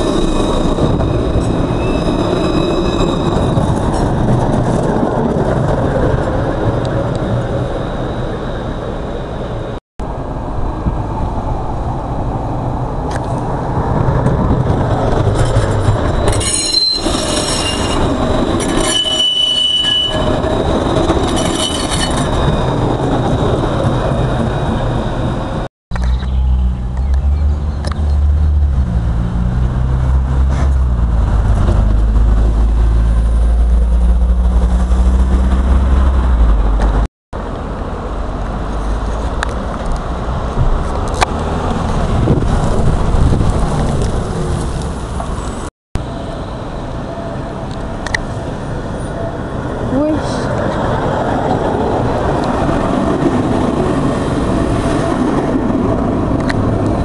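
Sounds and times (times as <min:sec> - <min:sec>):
high squealing of tram wheels: 0:00.0 - 0:05.0, 0:14.8 - 0:28.2
tram wheels rolling on rails: 0:00.0 - 0:57.0
road traffic low rumble: 0:22.3 - 0:57.0.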